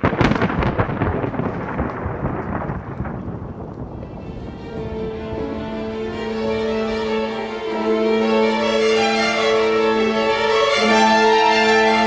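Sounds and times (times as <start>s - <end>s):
thunder-like rumble with crackling: 0.0s - 6.5s.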